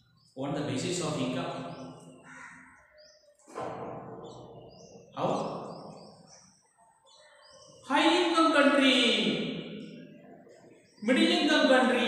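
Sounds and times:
faint bird chirps: 0:00.0 - 0:12.0
harsh crow-like caw: 0:02.2 - 0:03.0.

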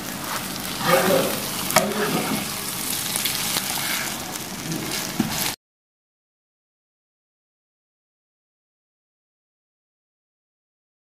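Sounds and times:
omelette sizzling in oil: 0:00.0 - 0:05.6.

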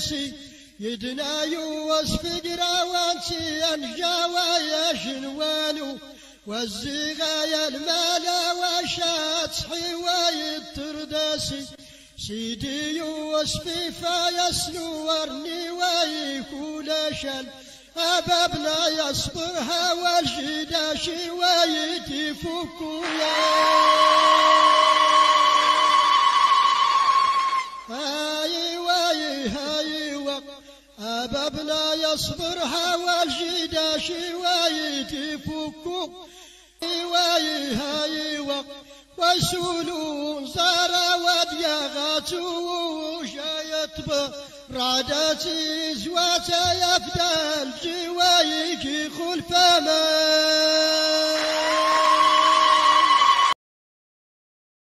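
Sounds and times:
group chant held note: 0:23.0 - 0:27.9.

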